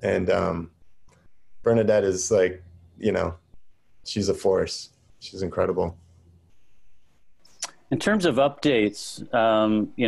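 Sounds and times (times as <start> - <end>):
man speaking: 0.0 - 0.7, 1.6 - 3.4, 4.1 - 6.0, 7.6 - 10.0
faint room noise: 0.0 - 10.0.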